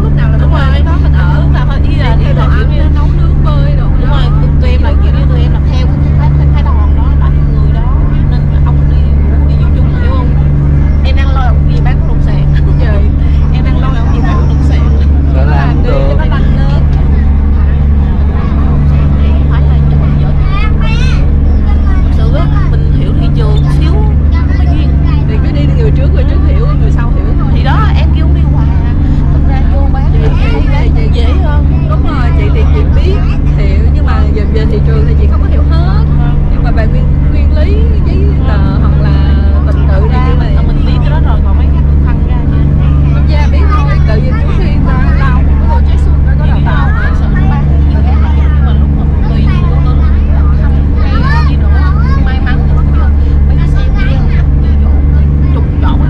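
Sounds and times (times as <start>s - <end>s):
boat engine drone: 0.0s - 56.0s
people talking: 0.0s - 56.0s.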